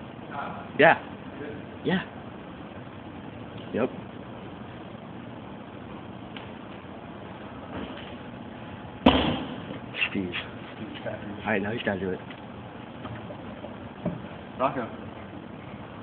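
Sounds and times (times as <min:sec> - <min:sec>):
steady background noise: 0:00.0 - 0:16.0
loud landing impact: 0:09.0 - 0:09.8.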